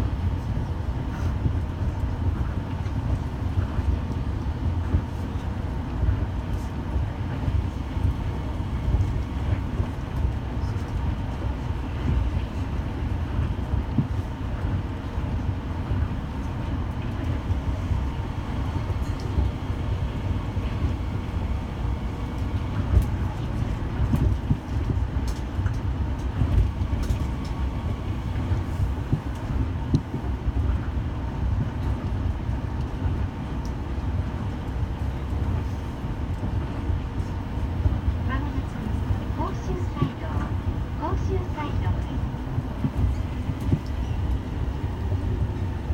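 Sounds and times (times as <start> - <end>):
train tyres rumbling on guideway: 0.0 - 45.9.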